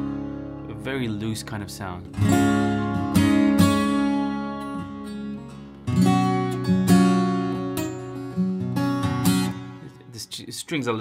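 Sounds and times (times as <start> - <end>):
acoustic guitar strumming: 0.0 - 10.2.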